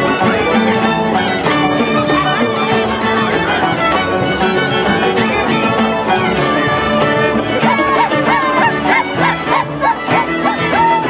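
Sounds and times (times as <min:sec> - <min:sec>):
folk music on violins and harp: 0:00.0 - 0:11.0.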